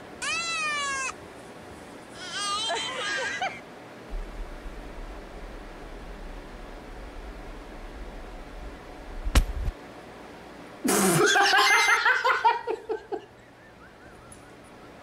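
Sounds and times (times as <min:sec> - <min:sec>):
low rumble: 0:04.1 - 0:09.8.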